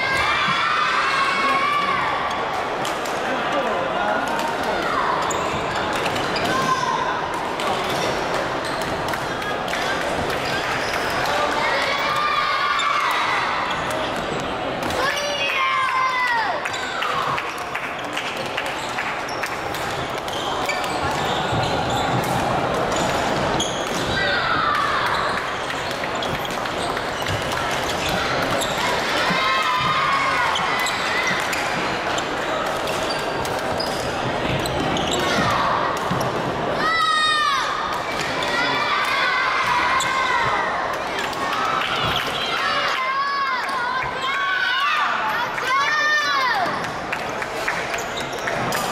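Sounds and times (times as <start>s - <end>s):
crowd chatter: 0.0s - 48.9s
sneakers squeaking on floor: 5.2s - 6.8s, 7.8s - 9.4s, 18.7s - 36.5s.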